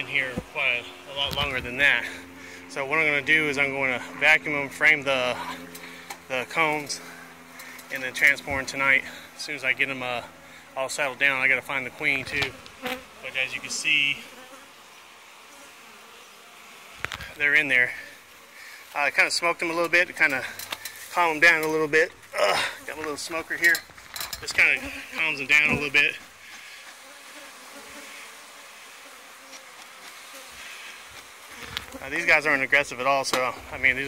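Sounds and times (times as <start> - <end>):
honey bees buzzing: 0.0 - 34.0
person speaking: 19.0 - 26.3.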